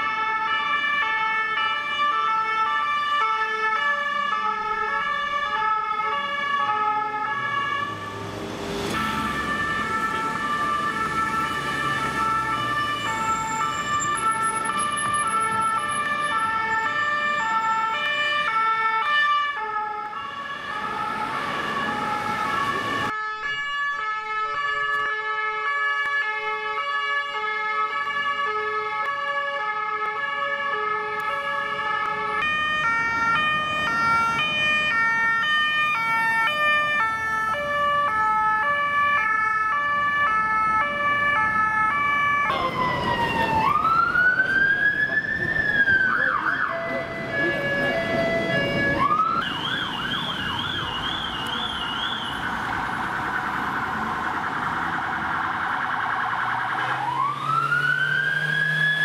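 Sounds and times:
street traffic: 0.0s - 59.0s
two-tone police sirens: 0.0s - 59.0s.

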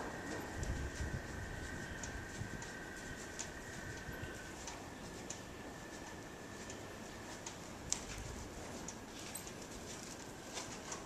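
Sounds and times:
horse hooves on sand: 0.0s - 11.0s.

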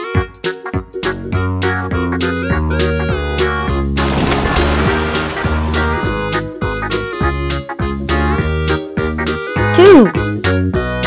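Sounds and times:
upbeat background music: 0.0s - 11.0s
cartoon water splash: 4.0s - 6.4s.

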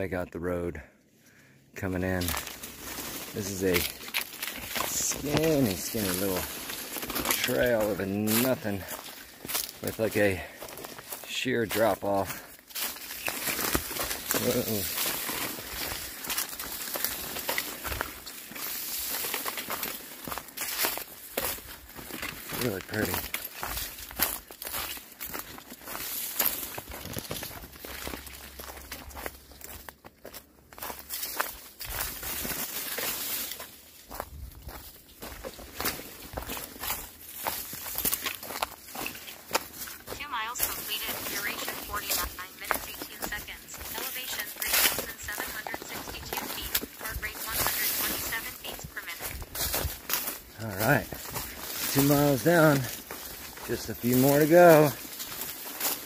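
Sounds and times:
footsteps on dirt and dry leaves: 1.8s - 56.0s.

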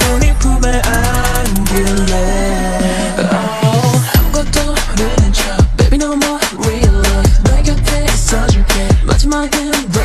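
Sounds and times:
fast hi-hat ticks: 0.0s - 2.3s
bass: 0.0s - 10.0s
pitched-down sung vocal: 0.0s - 10.0s.

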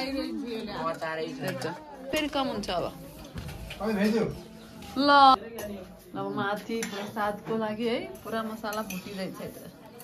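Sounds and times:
dishes and cutlery clinking: 0.0s - 10.0s.

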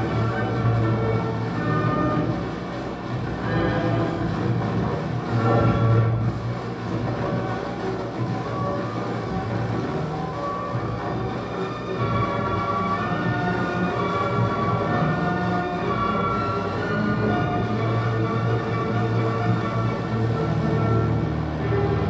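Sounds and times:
electronic drone music: 0.0s - 22.0s.

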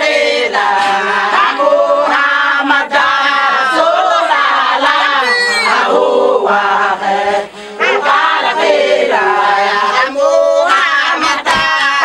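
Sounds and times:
women singing a chant: 0.0s - 12.0s
handclaps: 0.6s - 1.2s, 10.7s - 12.0s.

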